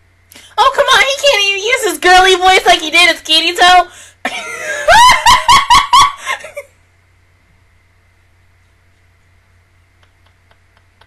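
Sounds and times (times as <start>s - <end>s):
woman laughing loudly: 4.3s - 6.7s.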